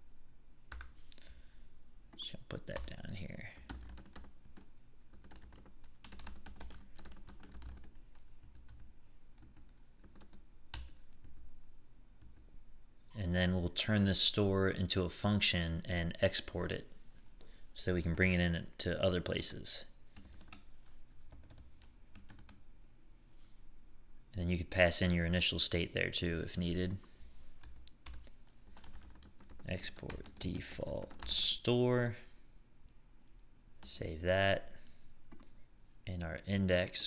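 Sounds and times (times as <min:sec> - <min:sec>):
typing on computer keyboard: 0:03.6 - 0:11.4, 0:20.2 - 0:22.6, 0:27.6 - 0:31.4.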